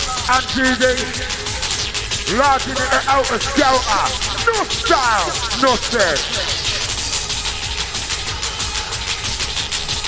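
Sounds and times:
happy hardcore dance music: 0.0 - 10.0.

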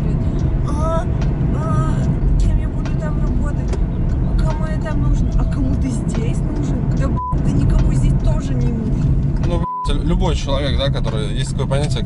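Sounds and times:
woman talking: 0.0 - 9.1
car interior rumble: 0.0 - 12.0.

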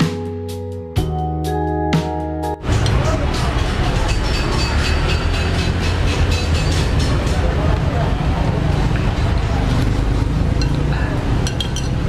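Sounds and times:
keyboard background music: 0.0 - 3.9
road traffic rumble: 2.6 - 12.0.

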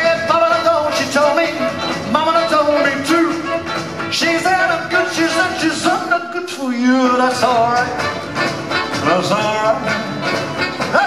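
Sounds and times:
horns playing melodic lines: 0.0 - 11.0
live rock and roll band: 0.0 - 11.0.

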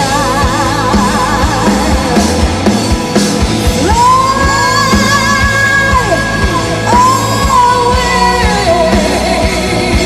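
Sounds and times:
woman singing: 0.0 - 2.9, 3.5 - 10.0
metal band playing: 0.0 - 10.0.

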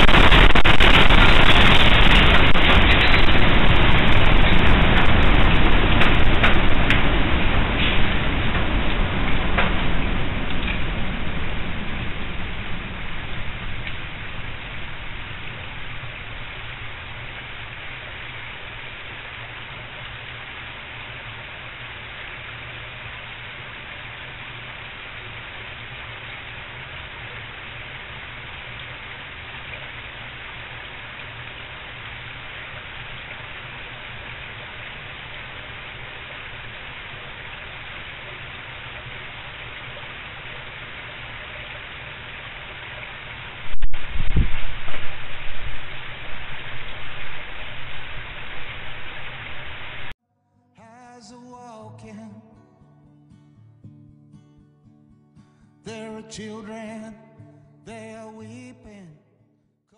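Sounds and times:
low rumble: 0.0 - 20.3
steady rushing hiss: 0.0 - 50.2.

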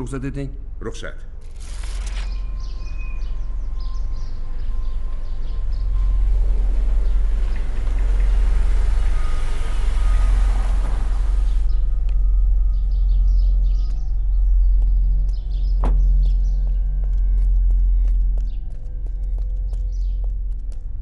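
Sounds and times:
low music drone: 0.0 - 21.0
birds chirping: 2.1 - 17.4.

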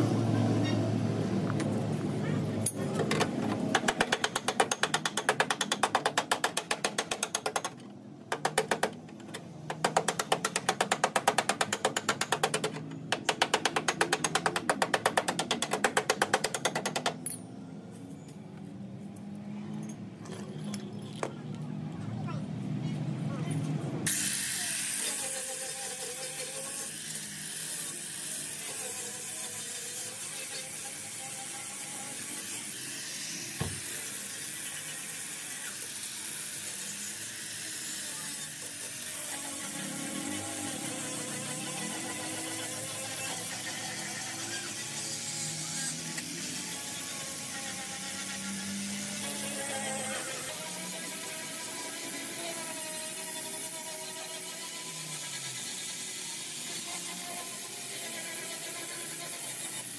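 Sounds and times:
angle grinder cutting steel: 24.1 - 59.9.

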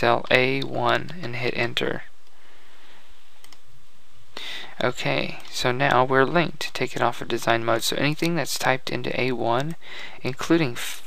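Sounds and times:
man's voice: 0.0 - 2.1, 4.4 - 11.0
steady hiss: 0.0 - 11.0
computer mouse click: 3.4 - 3.7.

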